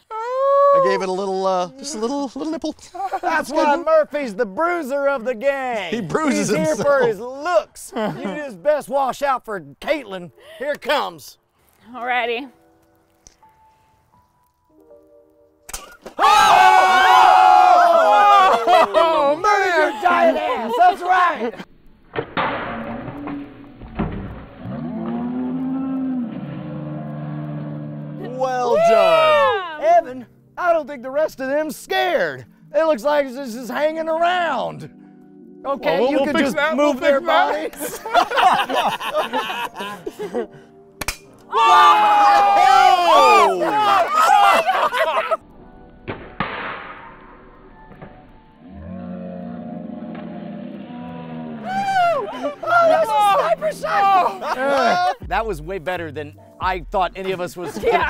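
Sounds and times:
slowed deep groaning voices: 0:24.6 - 0:28.5, 0:48.6 - 0:52.6
shot striking soda cans: 0:41.0 - 0:41.4.

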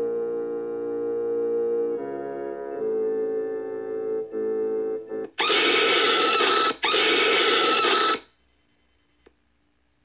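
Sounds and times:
quiet organ music: 0:00.0 - 0:05.9
harsh screech: 0:05.4 - 0:08.2.

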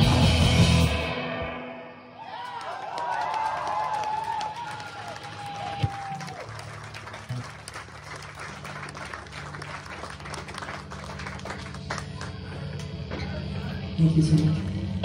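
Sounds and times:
live rock song: 0:00.0 - 0:02.0
crowd yelling and cheering: 0:01.8 - 0:13.8
scattered clapping: 0:02.4 - 0:12.9.

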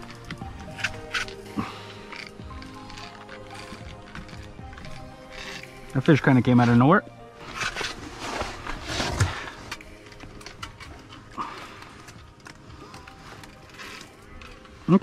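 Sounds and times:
fishing gear rustling and clicking: 0:00.0 - 0:15.0.

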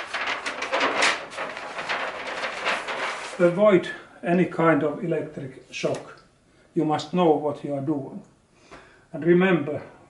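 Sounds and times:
paper sheet rustling and crinkling: 0:00.0 - 0:03.6.

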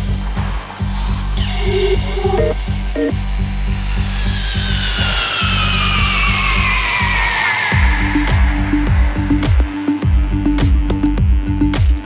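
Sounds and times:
pulsing synth bass: 0:00.0 - 0:07.0
rasping synth sweep: 0:01.2 - 0:10.0.

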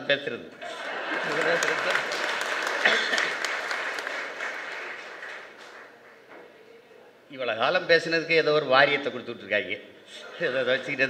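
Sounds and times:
audience clapping: 0:00.6 - 0:06.3.

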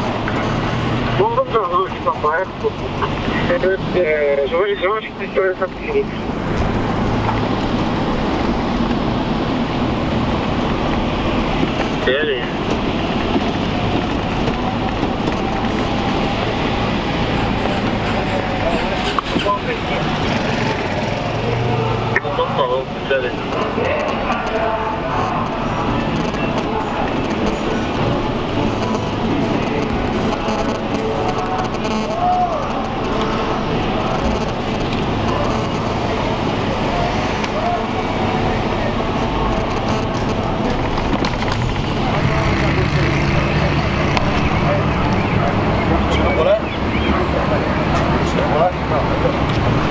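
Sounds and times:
car engine and road noise: 0:00.0 - 0:49.9.

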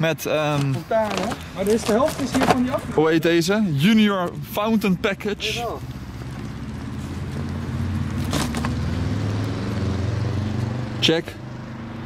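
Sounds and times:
vehicle engine humming: 0:00.8 - 0:12.0.

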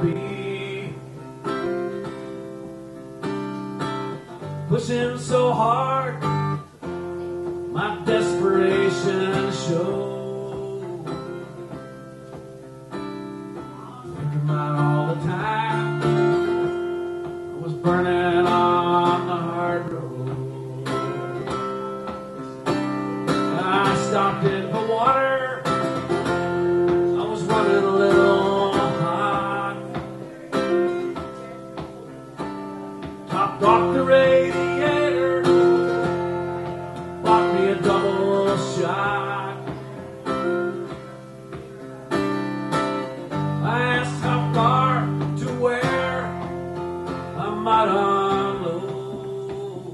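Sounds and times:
acoustic guitar playing: 0:00.0 - 0:49.9.

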